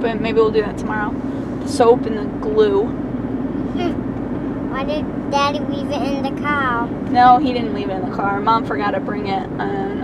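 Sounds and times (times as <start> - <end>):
car cabin hum: 0.0 - 10.0
road noise: 0.0 - 10.0.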